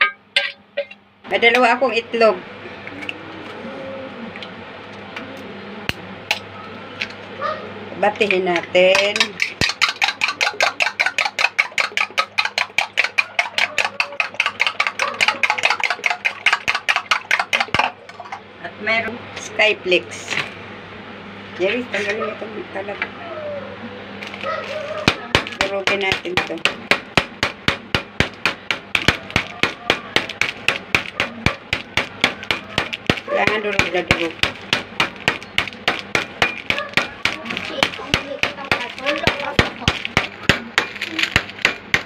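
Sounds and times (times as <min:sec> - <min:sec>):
whisk clicking against bowl: 0:08.9 - 0:17.9
rolling pin pounding crackers: 0:08.9 - 0:18.0, 0:24.2 - 0:42.0.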